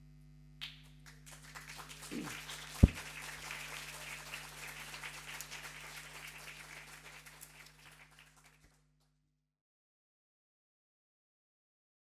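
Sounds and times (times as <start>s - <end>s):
low electrical hum: 0.0s - 8.4s
audience applause: 1.0s - 8.8s.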